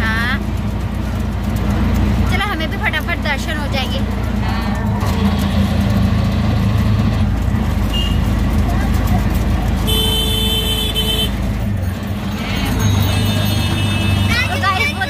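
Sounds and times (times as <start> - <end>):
auto-rickshaw engine running: 0.0 - 15.0
vehicle horn: 7.9 - 8.3, 9.8 - 11.5, 13.0 - 14.5.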